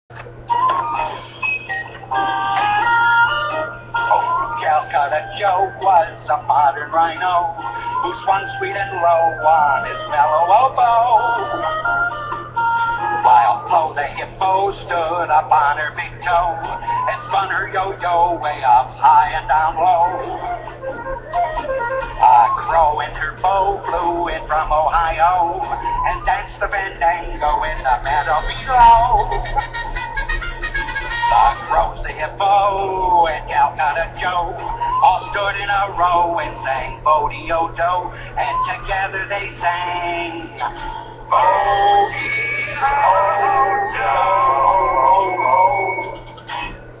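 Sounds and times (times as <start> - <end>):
steady low hum: 0.1 - 47.0
instrumental children's song melody: 0.5 - 46.6.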